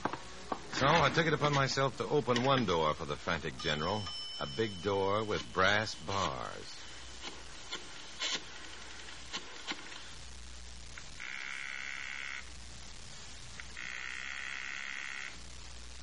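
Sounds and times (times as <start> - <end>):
steady low hum: 0.0 - 16.0
buzzing telephone ring: 11.2 - 12.5, 13.8 - 15.4.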